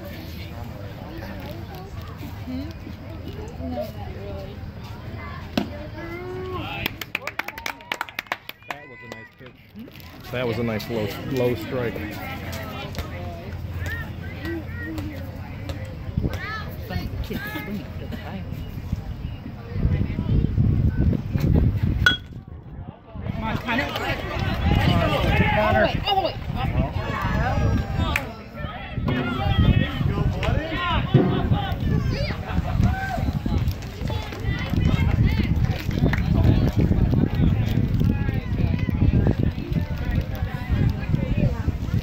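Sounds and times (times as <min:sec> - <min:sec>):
distant voices: 0:00.0 - 0:42.0
spectators talking and calling out: 0:00.0 - 0:42.0
hand clapping: 0:06.8 - 0:09.5
metal bat hitting ball: 0:22.0 - 0:22.4.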